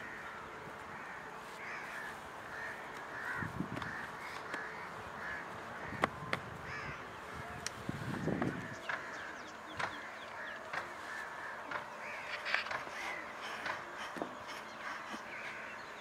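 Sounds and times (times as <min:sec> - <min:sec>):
birds calling: 0:00.0 - 0:16.0.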